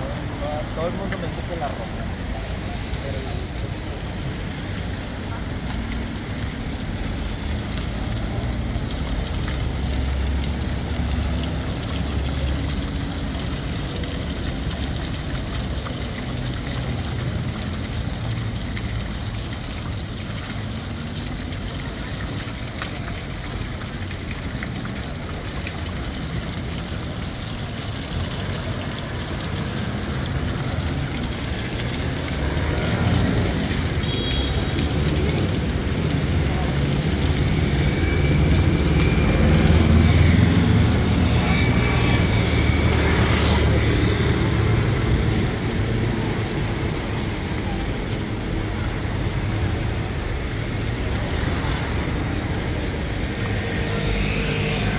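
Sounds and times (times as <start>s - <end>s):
fountain water splashing: 0.0s - 54.9s
rumble of cars and buses: 0.0s - 54.9s.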